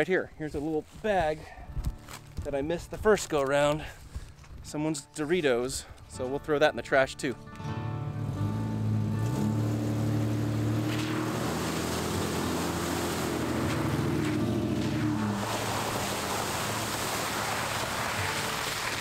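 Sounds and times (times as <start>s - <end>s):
background music: 1.1s - 19.0s
suv engines running: 8.2s - 19.0s
water splashing from tyres: 8.8s - 19.0s
sloshing through mud: 9.4s - 19.0s.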